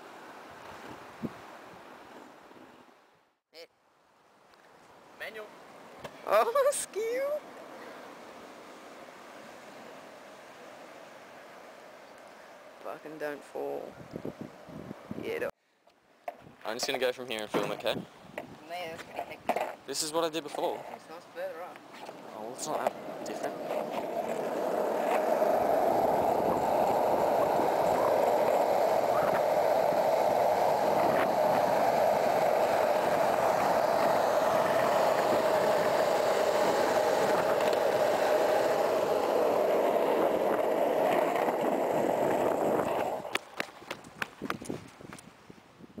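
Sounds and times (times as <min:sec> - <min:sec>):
skateboard wheels rolling on asphalt: 0:16.2 - 0:46.0
skateboard clicks and knocks: 0:18.4 - 0:19.8, 0:22.0 - 0:44.8.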